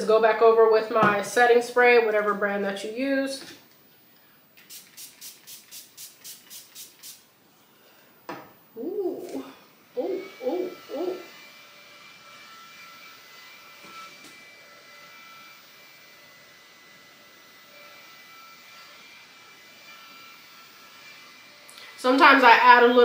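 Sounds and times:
handheld fan whine: 0.9 - 23.0
person humming: 8.8 - 11.4.

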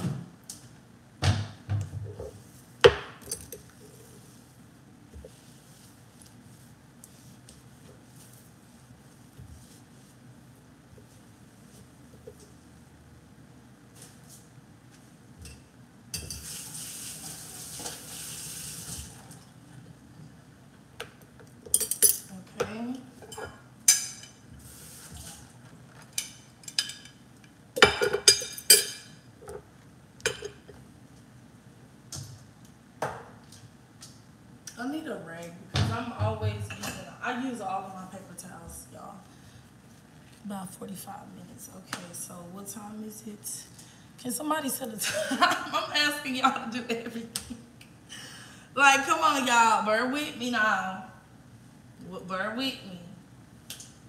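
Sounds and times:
steady hiss: 16.3 - 19.4
dishes clinking on stone counter: 27.8 - 29.6, 30.2 - 30.8.

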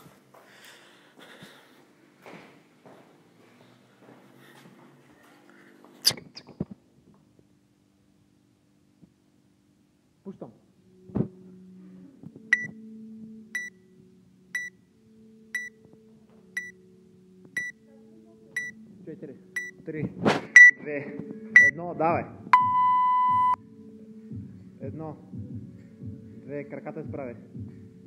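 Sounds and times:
countdown timer beeping: 12.5 - 12.8, 13.6 - 13.8, 17.6 - 17.8, 18.6 - 18.8, 19.6 - 19.8, 20.6 - 20.8, 21.6 - 21.8, 22.6 - 23.6.

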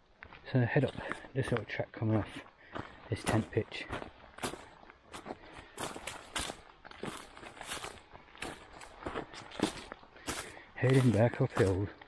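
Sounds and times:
footsteps on dry leaves: 0.2 - 12.0.

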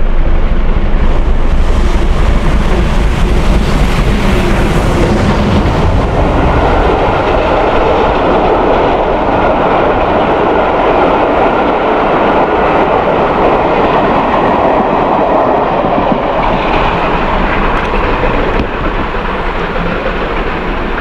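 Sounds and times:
train carriages rolling on rails: 0.0 - 21.0.

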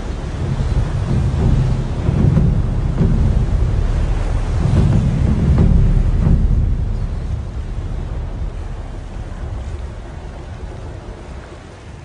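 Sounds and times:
waterfall rumble: 0.0 - 12.0.

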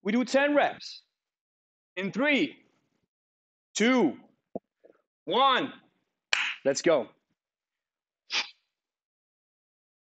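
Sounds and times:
sharp forceful exhale: 8.3 - 8.6.

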